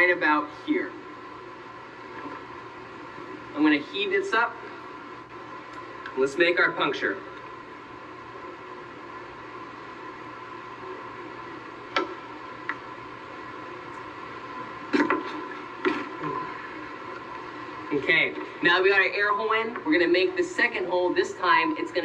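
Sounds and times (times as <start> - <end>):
steady speaker tone: 0.0 - 22.0.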